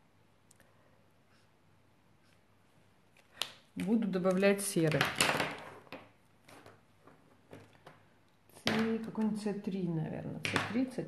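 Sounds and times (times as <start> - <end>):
plastic pens clattering on wood: 3.8 - 8.0.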